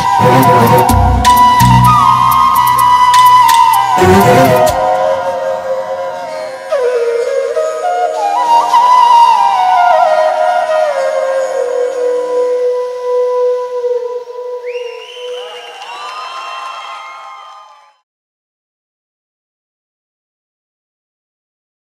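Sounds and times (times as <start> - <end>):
sustained tones: 0.0 - 1.9, 4.0 - 6.2
bamboo flute melody: 0.0 - 18.0.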